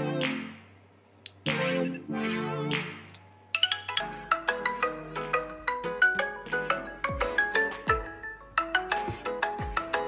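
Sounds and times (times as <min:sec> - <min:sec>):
phone ringtone melody: 0:03.5 - 0:10.0.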